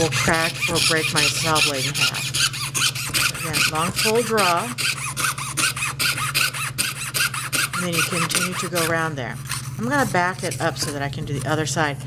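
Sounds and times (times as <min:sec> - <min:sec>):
fine saw rasping through laminate: 0:00.0 - 0:11.6.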